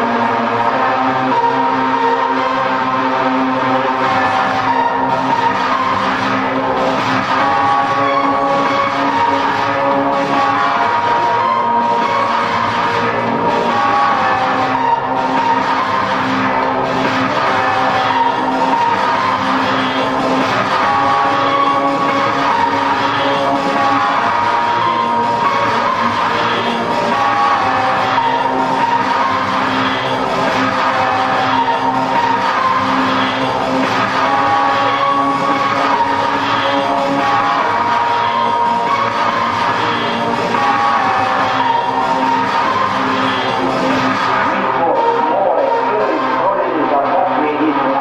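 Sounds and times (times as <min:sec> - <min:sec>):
martial industrial music: 0:00.0 - 0:48.0.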